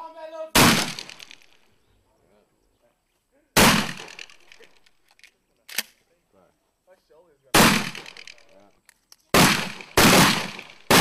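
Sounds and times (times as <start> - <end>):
shotgun shots echoing: 0.5 - 1.6, 3.6 - 4.8, 7.5 - 8.6, 9.3 - 11.0.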